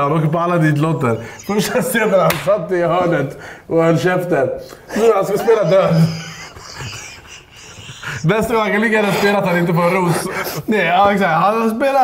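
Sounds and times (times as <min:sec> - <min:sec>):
man laughing breathily: 0:04.9 - 0:10.7.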